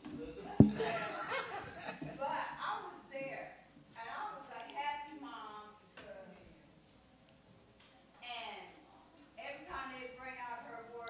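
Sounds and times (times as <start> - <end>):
people laughing: 0.2 - 2.3
sharp thump: 0.6 - 1.0.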